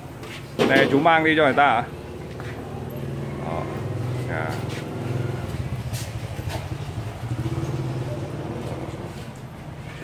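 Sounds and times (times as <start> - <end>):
small motorbike engine: 2.0 - 10.0.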